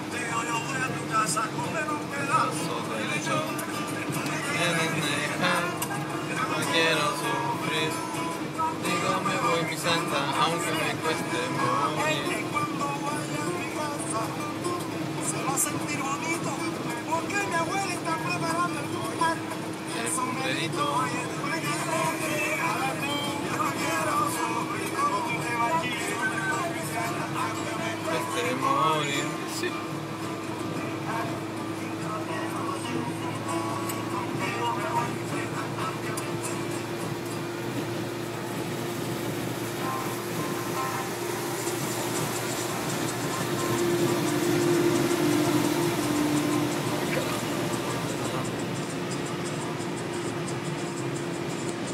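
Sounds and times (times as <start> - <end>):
car engine and road noise: 0.0 - 51.9
music with singing voice: 0.0 - 51.9.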